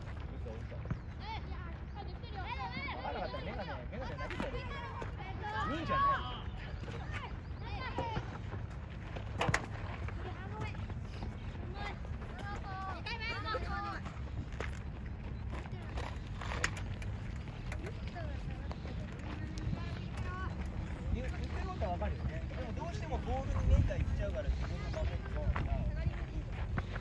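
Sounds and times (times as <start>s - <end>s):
wind rumble on microphone: 9.0s - 27.0s.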